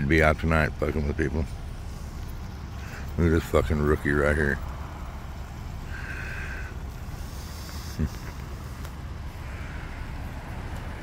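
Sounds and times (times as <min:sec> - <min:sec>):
idling vehicles rumble: 0:00.0 - 0:11.0.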